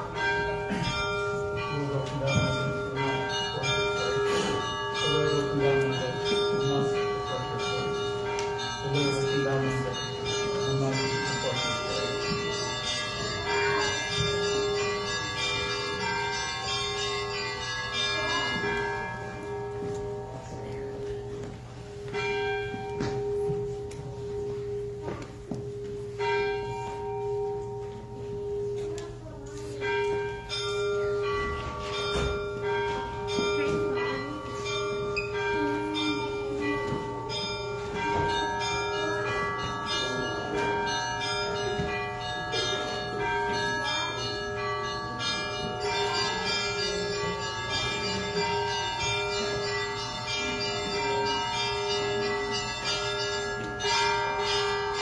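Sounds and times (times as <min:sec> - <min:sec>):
church bells chiming: 0:00.0 - 0:55.0.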